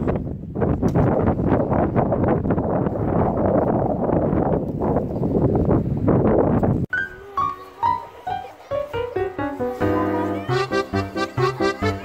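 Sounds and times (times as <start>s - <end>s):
blizzard wind buffeting microphone: 0.0s - 6.9s.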